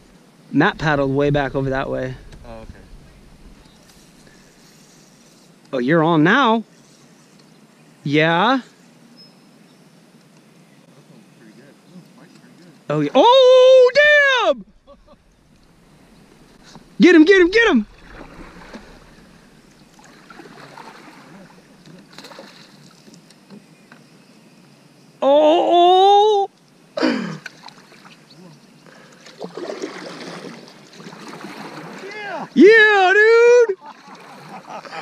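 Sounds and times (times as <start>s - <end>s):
excited yells: 13.1s - 14.7s, 32.0s - 33.8s
water splashing around kayaks: 15.0s - 23.7s, 27.4s - 35.0s.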